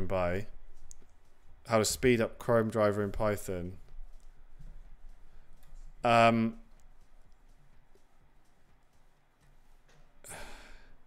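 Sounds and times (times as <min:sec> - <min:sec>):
man sighing: 0:10.2 - 0:10.9.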